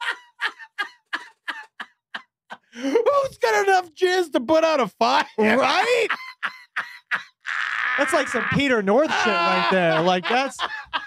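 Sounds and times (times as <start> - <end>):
man laughing hard: 0.0 - 3.1, 5.4 - 11.0.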